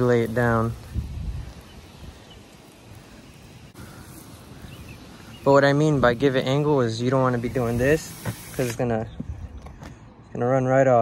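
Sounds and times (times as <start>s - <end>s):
spray hissing onto roof tiles: 0.0s - 10.1s.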